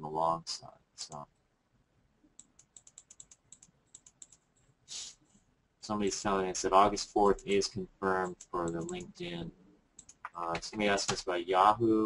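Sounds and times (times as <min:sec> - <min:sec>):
typing on computer keyboard: 0:02.4 - 0:04.5, 0:08.3 - 0:09.1.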